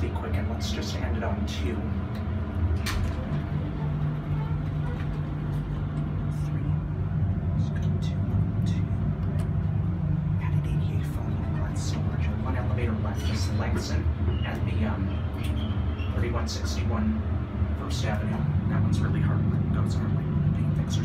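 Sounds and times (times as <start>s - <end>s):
elevator hum: 0.0s - 21.0s.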